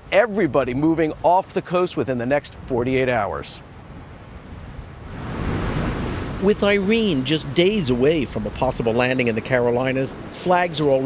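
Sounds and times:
ocean surf washing onto beach: 0.4 - 11.0.

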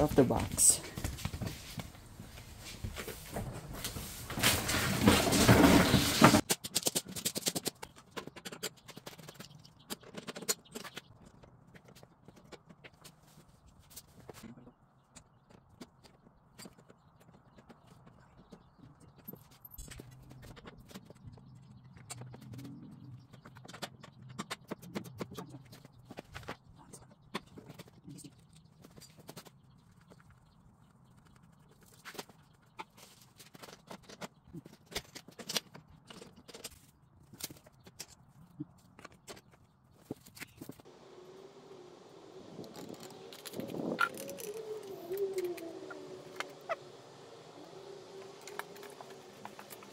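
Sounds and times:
clicks and knocks of parts handled: 32.0 - 40.8
loud wavering tone: 41.0 - 49.8.

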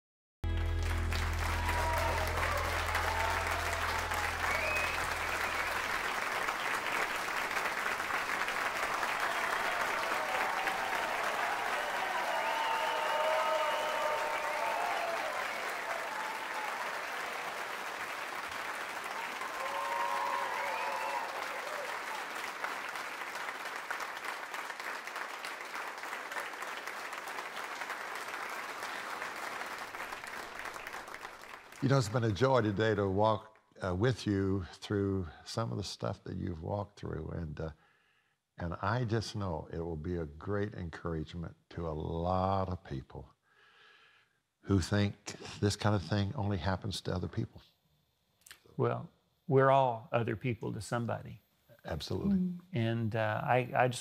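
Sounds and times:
audience applauding: 0.4 - 33.1
audience cheers: 0.6 - 32.3.

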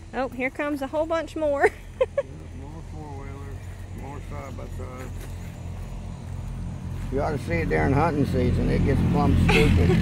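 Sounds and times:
off-road vehicles driving past: 0.0 - 10.0.

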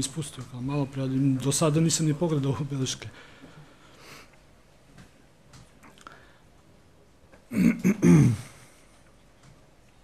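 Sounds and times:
man clearing his throat: 7.5 - 8.6.

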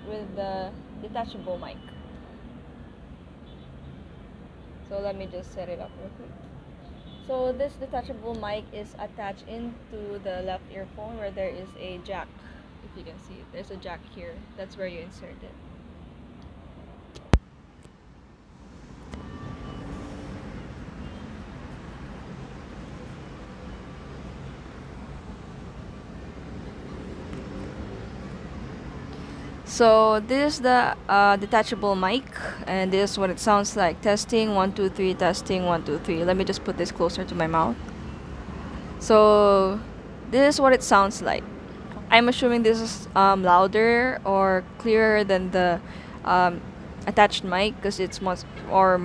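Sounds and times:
distant city traffic rumble: 0.0 - 49.0.

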